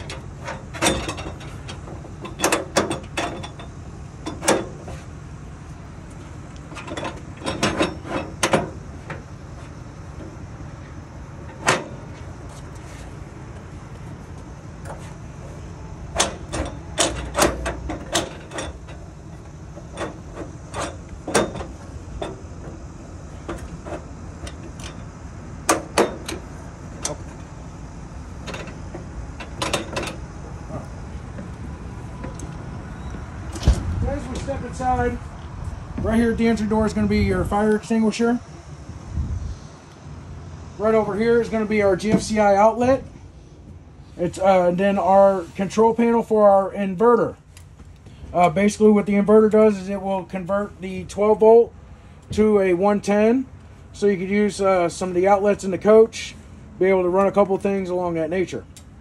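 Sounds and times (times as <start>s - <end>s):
metal steps clicking and knocking: 0.0s - 5.0s, 6.1s - 10.4s, 11.5s - 12.8s, 16.1s - 27.5s, 28.4s - 30.5s, 41.4s - 43.1s.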